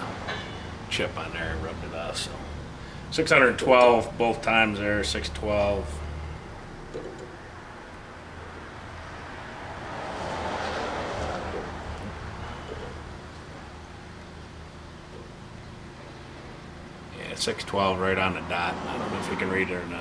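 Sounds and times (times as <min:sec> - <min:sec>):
workshop background hum: 0:00.0 - 0:20.0.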